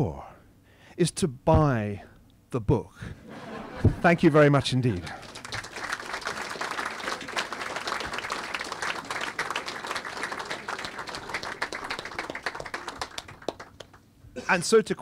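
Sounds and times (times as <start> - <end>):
audience applauding: 4.3 - 14.0.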